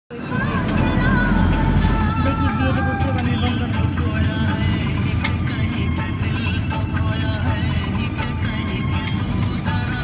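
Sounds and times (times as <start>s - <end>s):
vehicle rumble from inside: 0.1s - 10.0s.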